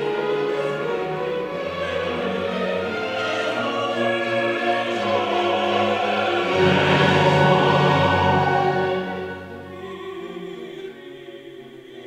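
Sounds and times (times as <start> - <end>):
symphony orchestra playing: 0.0 - 11.3
mixed choir singing: 0.0 - 12.0.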